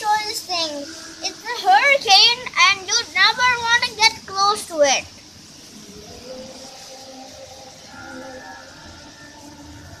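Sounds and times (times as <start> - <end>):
faint drawn-out tones: 0.0 - 10.0
heavy rain falling: 0.0 - 10.0.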